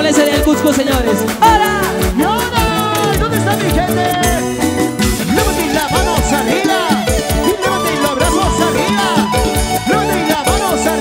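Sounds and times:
steady drum beat: 0.0s - 11.0s
bandurria strummed: 0.1s - 11.0s.

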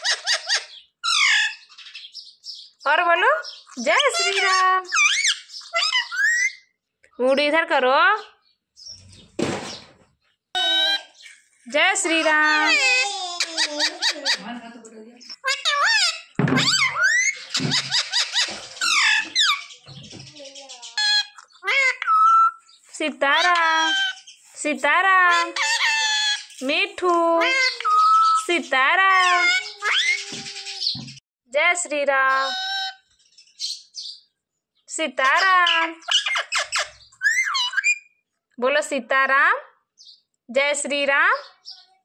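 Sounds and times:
parakeet chattering: 0.0s - 2.6s, 3.4s - 6.7s, 10.6s - 11.3s, 12.1s - 14.6s, 15.2s - 22.7s, 23.3s - 24.4s, 25.3s - 26.6s, 27.4s - 28.5s, 29.1s - 31.2s, 32.3s - 34.2s, 35.3s - 38.1s.

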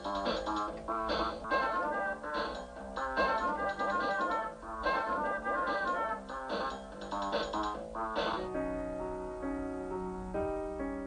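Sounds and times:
tiny keyboard playing jazz: 0.0s - 11.0s.

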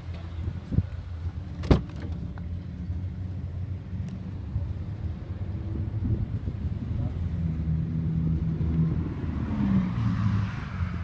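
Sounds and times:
steady low rumble: 0.0s - 9.5s
car door clunk: 1.6s - 2.2s
car door latch clicking: 1.6s - 2.2s.

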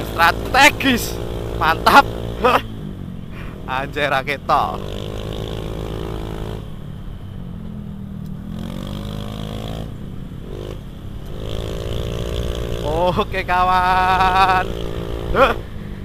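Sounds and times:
scooter engine running: 0.0s - 16.0s.

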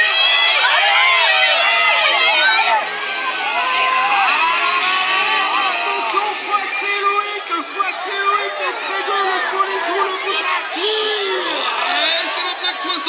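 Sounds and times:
crowd shouting and cheering: 0.0s - 13.0s.

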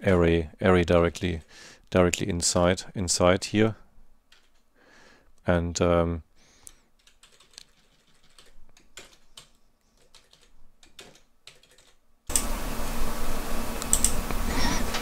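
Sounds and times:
computer keyboard clicks: 4.3s - 4.6s, 7.0s - 12.0s, 13.9s - 14.2s.

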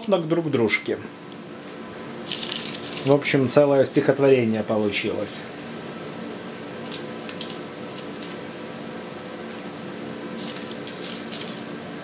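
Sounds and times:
steady low hum: 0.0s - 12.0s
parchment paper crinkling: 2.2s - 3.2s, 6.8s - 8.4s, 10.4s - 11.7s.

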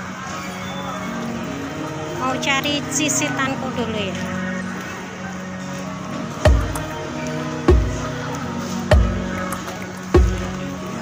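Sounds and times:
sustained music tones: 0.0s - 11.0s
slow deep beat: 6.4s - 10.8s.

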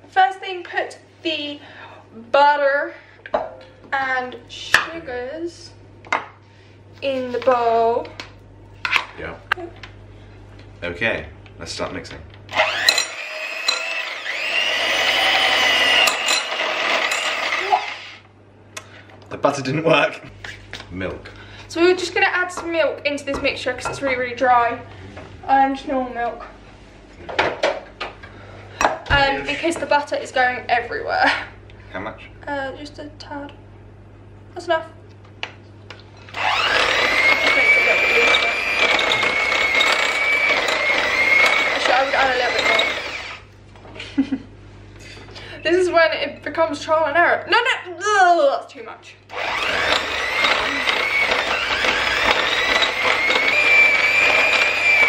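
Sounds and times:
electric hand mixer whine: 12.5s - 18.2s, 36.3s - 43.5s, 49.3s - 55.0s
beaters rattling through dough: 36.4s - 43.3s, 49.4s - 55.0s.

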